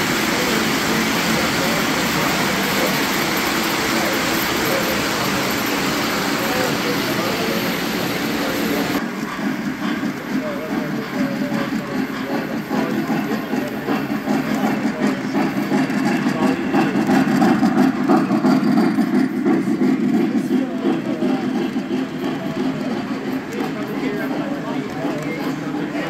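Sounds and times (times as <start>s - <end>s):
model train wheels rumbling: 0.0s - 26.0s
people chatting: 0.0s - 26.0s.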